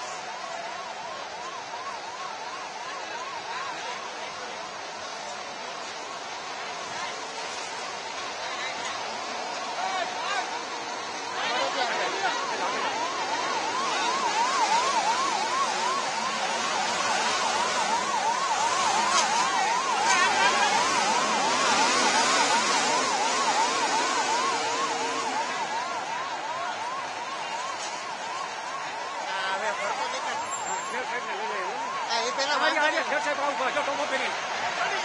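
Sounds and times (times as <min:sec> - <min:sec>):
background noise rush: 0:00.0 - 0:35.0
emergency siren yelping: 0:00.0 - 0:35.0.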